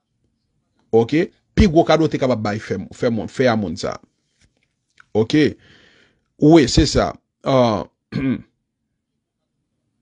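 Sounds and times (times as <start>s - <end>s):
person clearing throat: 8.1s - 8.6s.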